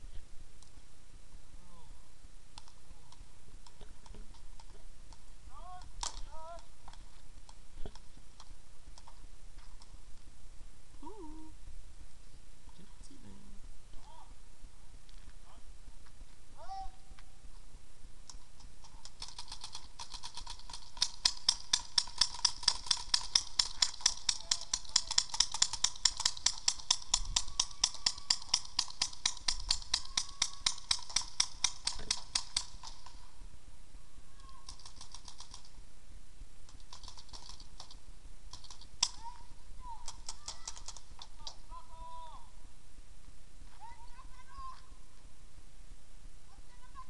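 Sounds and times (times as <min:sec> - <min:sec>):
paintball markers firing: 0:18.3 - 0:33.3, 0:34.5 - 0:35.8, 0:36.7 - 0:39.4, 0:40.0 - 0:41.7.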